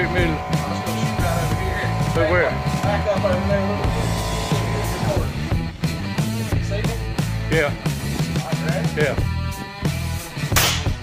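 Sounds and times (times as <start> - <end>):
rock music with guitar: 0.0 - 11.0.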